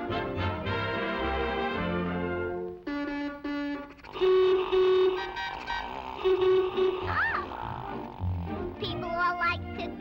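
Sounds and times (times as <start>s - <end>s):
cartoon car horns honking: 2.9s - 7.5s.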